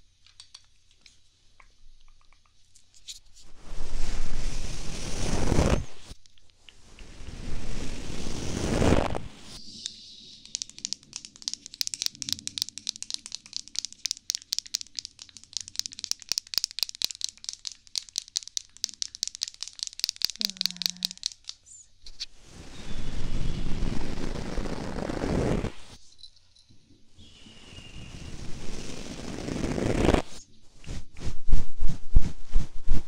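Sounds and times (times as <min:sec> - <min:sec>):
brush scratching microphone: 0:07.0 - 0:09.6, 0:23.3 - 0:26.0, 0:28.2 - 0:33.0.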